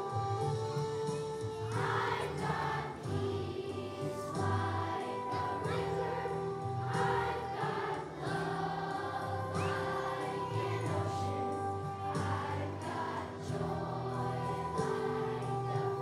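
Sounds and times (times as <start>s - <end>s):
children's choir singing: 0.0s - 16.0s
instrumental accompaniment: 0.0s - 16.0s.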